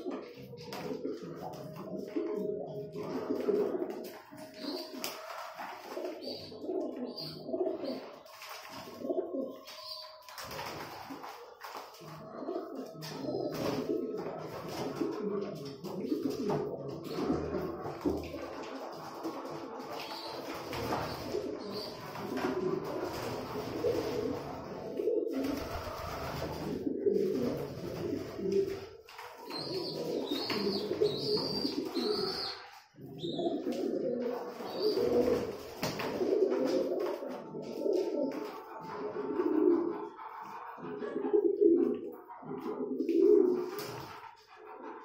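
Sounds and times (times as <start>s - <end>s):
pigeons cooing: 0.0s - 45.0s.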